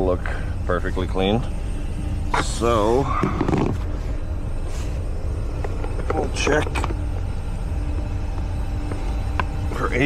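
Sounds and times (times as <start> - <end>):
aircraft systems rumble and hum: 0.0 - 10.0.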